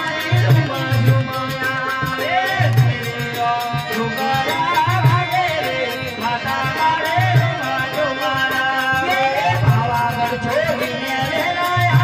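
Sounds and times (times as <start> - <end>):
tabla: 0.0 - 12.0.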